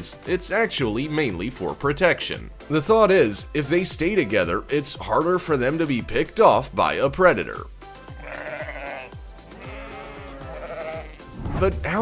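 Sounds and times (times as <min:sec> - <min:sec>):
background music with beat: 0:00.0 - 0:12.0
sheep bleating: 0:08.0 - 0:11.3.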